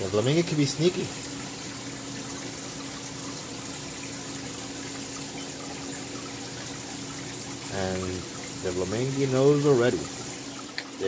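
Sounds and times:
aquarium water rushing: 0.0s - 11.0s
faint pump hum: 0.0s - 11.0s.

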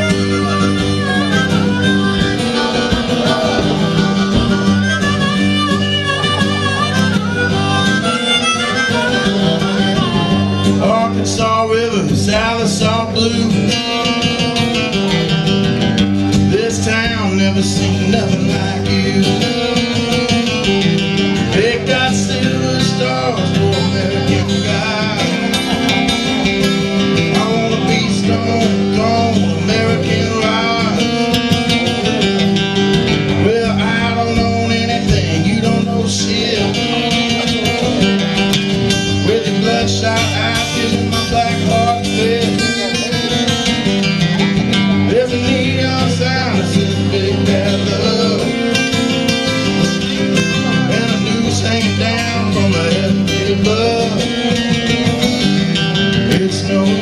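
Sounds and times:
live band playing country rock: 0.0s - 57.0s.

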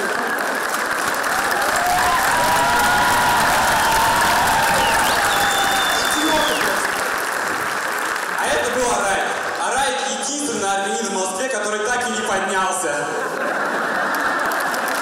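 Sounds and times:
audience applauding: 0.0s - 10.4s, 13.2s - 15.0s.

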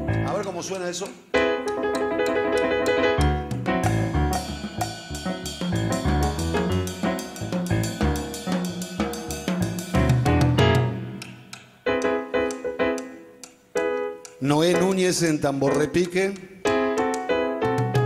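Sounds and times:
drum kit played with sticks: 0.0s - 18.0s
keyboard chords: 0.0s - 18.0s.

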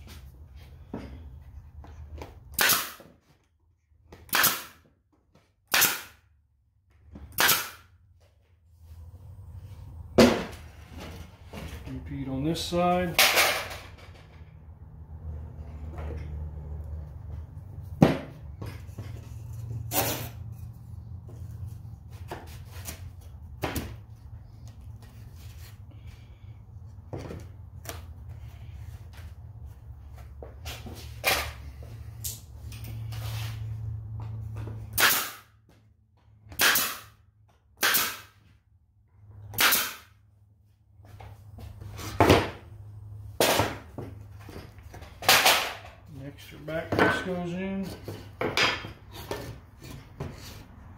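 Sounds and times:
staple gun shots into wood: 2.6s - 3.1s, 4.3s - 4.8s, 5.7s - 6.2s, 7.3s - 7.9s, 34.9s - 35.5s, 36.5s - 37.1s, 37.8s - 38.3s, 39.5s - 40.1s.

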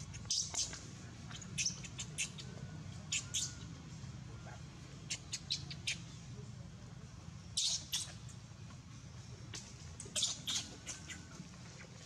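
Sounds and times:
baby monkey squealing: 7.6s - 8.2s, 10.1s - 11.2s.

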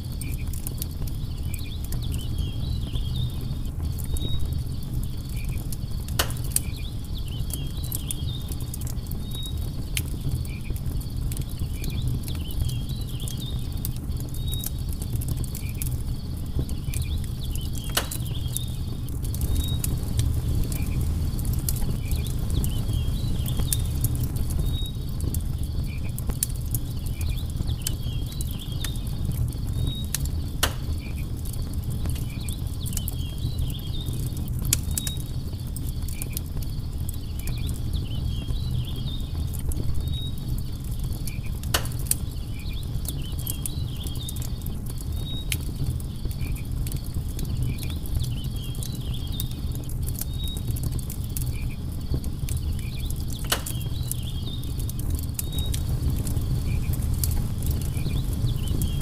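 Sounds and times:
campfire crackling and popping: 0.0s - 59.0s
high insect chirps: 15.6s - 31.4s.

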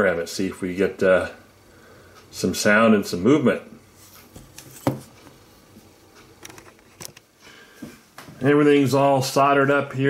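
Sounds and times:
quiet room hiss: 0.0s - 10.0s.

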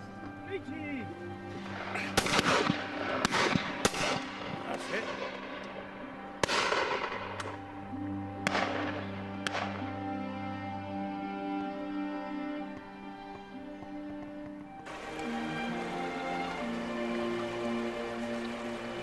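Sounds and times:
background music: 0.0s - 19.0s
shotgun shots echoing: 1.9s - 5.8s, 6.4s - 7.6s, 8.4s - 9.8s.

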